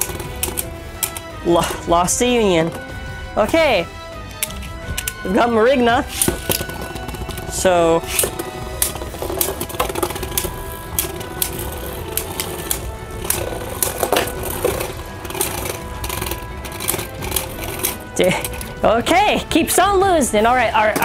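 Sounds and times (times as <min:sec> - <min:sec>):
tops clicking together: 0:00.0 - 0:02.0, 0:02.6 - 0:18.9
spinning tops whirring: 0:00.0 - 0:19.2
background music: 0:00.0 - 0:21.0.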